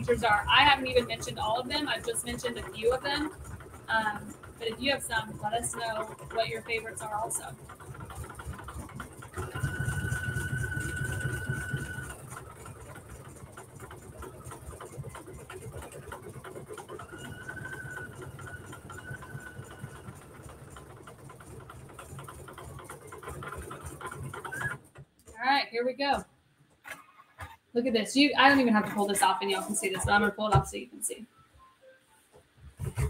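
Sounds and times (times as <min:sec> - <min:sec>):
embroidery machine needle patter: 0:00.0 - 0:25.6
high machine whine: 0:09.4 - 0:12.4.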